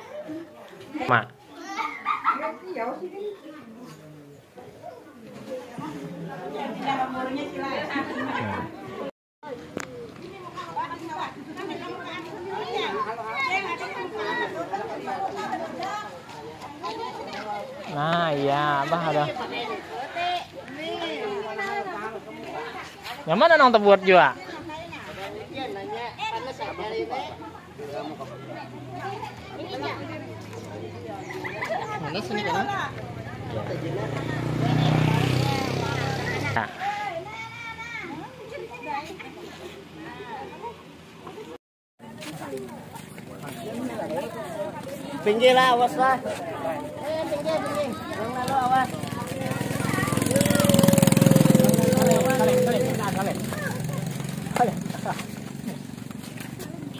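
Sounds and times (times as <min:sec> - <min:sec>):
group of people chattering: 0:00.0 - 0:56.9
vehicle engine humming: 0:42.6 - 0:56.9.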